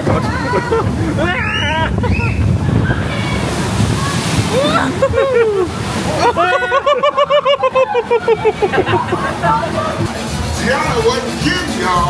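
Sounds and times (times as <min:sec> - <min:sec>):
rushing water: 0:00.0 - 0:12.0
person laughing high-pitched: 0:04.6 - 0:09.4.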